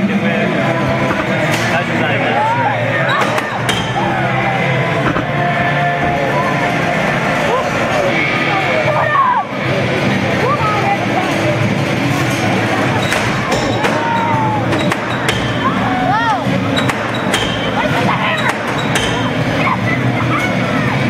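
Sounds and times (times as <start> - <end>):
crowd chatter: 0.0 - 21.0
music playing: 0.0 - 21.0.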